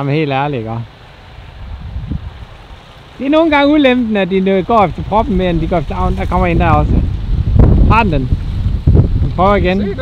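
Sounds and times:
wind rumbling on microphone: 0:00.8 - 0:10.0.

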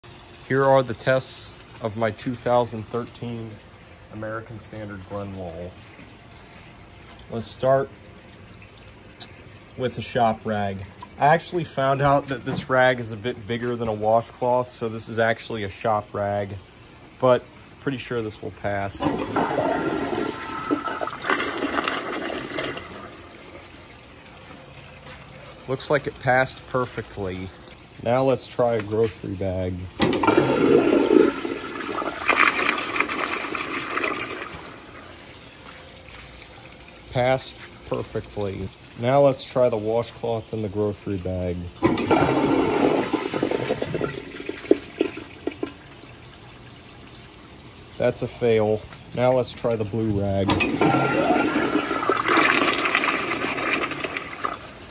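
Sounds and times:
water gurgles: 0:00.0 - 0:54.9
water trickle: 0:00.0 - 0:54.9
toilet flushing: 0:09.2 - 0:24.2, 0:25.7 - 0:48.8, 0:49.7 - 0:54.9.

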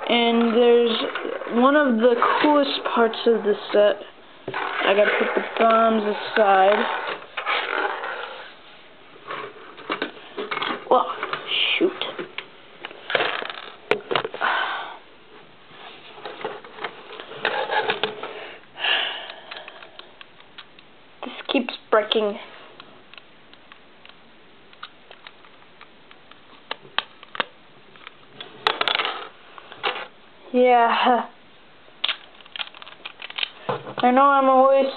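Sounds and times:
plastic pieces clicking on wooden desk: 0:32.0 - 0:33.6.

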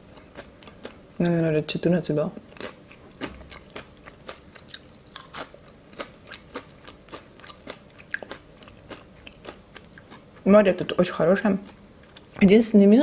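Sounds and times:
crunching and chewing chips: 0:00.0 - 0:01.5, 0:02.4 - 0:10.5.

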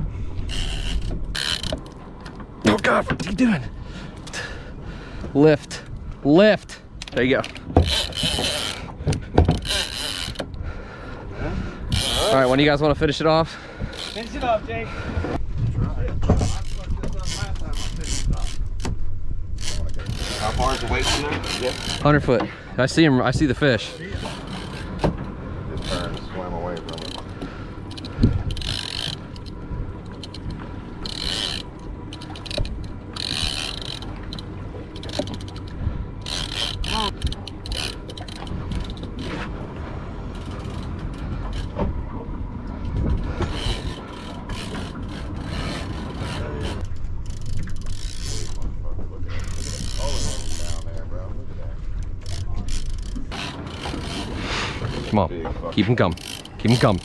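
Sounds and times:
fishing reel clicking and grinding: 0:00.5 - 0:02.0, 0:07.0 - 0:08.9, 0:09.5 - 0:10.6, 0:11.9 - 0:12.8, 0:13.9 - 0:14.6, 0:16.4 - 0:18.8, 0:19.6 - 0:22.3, 0:23.8 - 0:25.0, 0:25.7 - 0:39.4, 0:43.4 - 0:48.7, 0:49.4 - 0:51.1, 0:52.0 - 0:55.2, 0:55.9 - 0:57.0
low rumble: 0:14.6 - 0:56.8.

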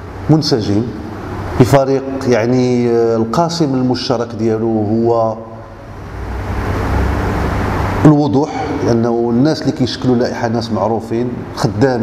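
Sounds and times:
loud steady rushing noise: 0:00.0 - 0:12.0.

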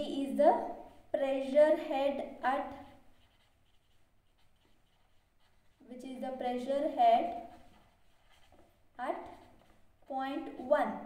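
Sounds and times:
marker scratching on paper: 0:00.0 - 0:11.0
woman's voice: 0:10.1 - 0:11.0.

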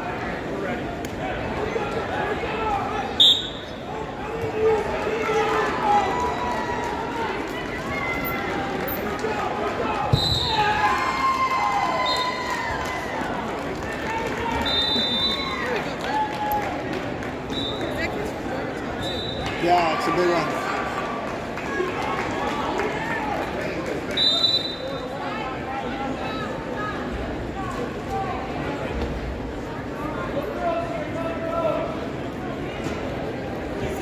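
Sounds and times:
spectators chattering and shouting: 0:00.0 - 0:34.0.

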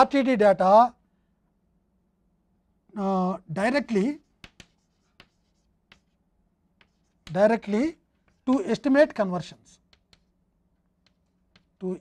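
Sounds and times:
chalk tapping on blackboard: 0:04.0 - 0:12.0.

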